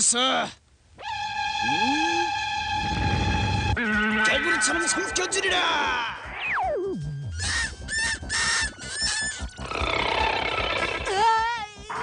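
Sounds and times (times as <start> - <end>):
dramatic music: 1.1 - 12.0
low rumble: 2.5 - 4.0.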